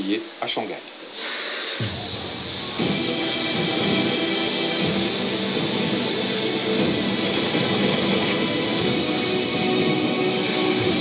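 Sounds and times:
background music from television: 1.2 - 11.0.

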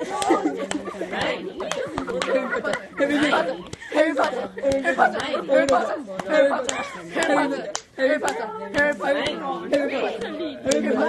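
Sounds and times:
people chanting and talking: 0.0 - 11.0.

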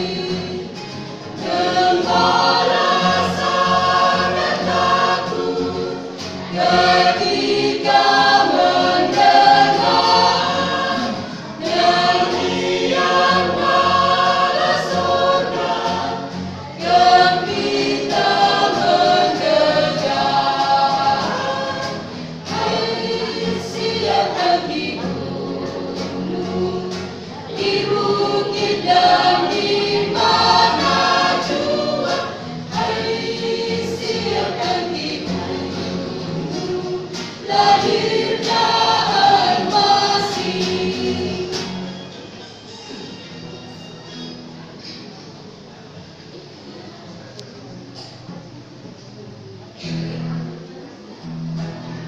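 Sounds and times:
mixed vocal group singing: 0.0 - 45.2.

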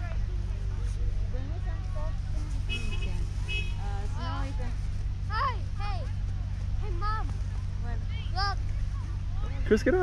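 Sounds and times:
faint distant voices: 0.0 - 10.0
low outdoor rumble: 0.0 - 10.0.

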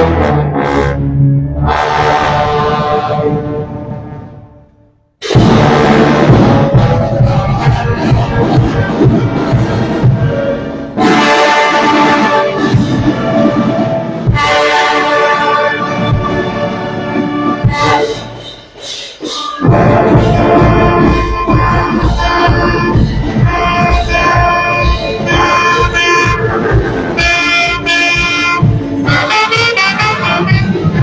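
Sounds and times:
brass band playing held chords: 0.0 - 4.6, 5.2 - 18.4, 19.6 - 31.0
low drum beat: 5.3 - 10.4, 19.6 - 31.0.

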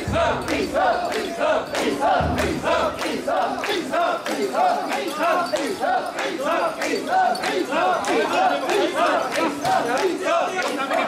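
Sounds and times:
crowd shouting rhythmic chant: 0.0 - 11.0.

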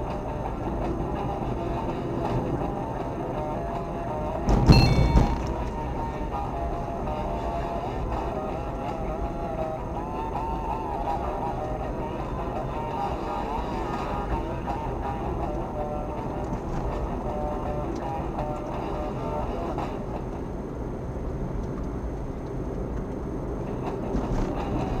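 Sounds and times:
car radio music: 0.0 - 20.3
car engine and road noise: 0.0 - 25.0.

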